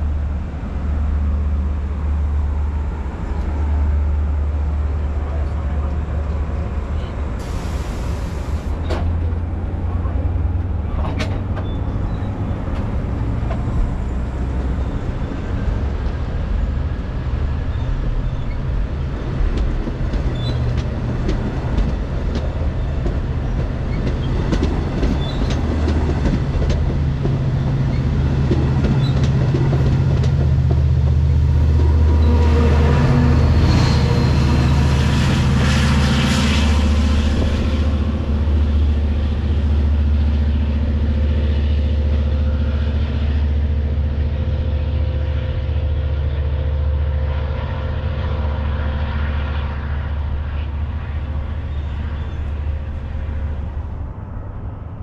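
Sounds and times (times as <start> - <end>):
diesel locomotive engine drone: 0.0 - 55.0
high rail noise: 0.0 - 55.0
train wheels clicking over rail joints: 19.3 - 31.4.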